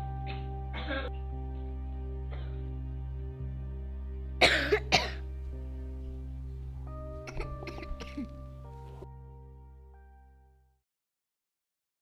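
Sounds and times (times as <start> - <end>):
quiet background music: 0.0 - 10.8
person coughing: 0.3 - 1.1, 4.4 - 5.2, 7.3 - 8.3.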